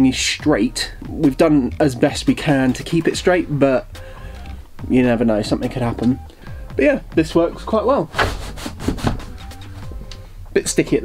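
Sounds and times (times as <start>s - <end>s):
blind sliding with scraping rub: 8.1s - 10.0s.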